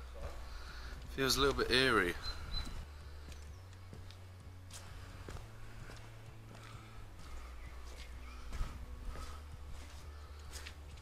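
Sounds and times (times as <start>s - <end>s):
footsteps: 0.0s - 1.1s, 2.6s - 11.0s.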